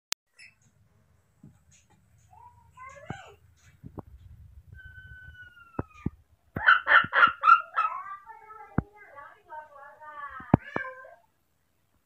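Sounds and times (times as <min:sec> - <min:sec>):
baby monkey crying: 0:04.8 - 0:08.0.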